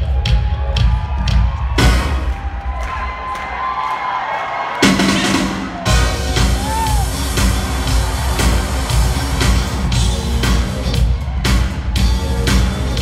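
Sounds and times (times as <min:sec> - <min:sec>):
crowd cheering and screaming: 0:00.0 - 0:13.0
live pop concert music: 0:00.0 - 0:13.0.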